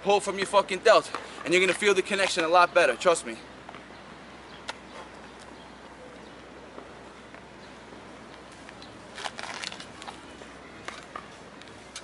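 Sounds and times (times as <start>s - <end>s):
outdoor background hiss: 0.0s - 12.0s
crackling rustling handling noise: 8.4s - 11.2s.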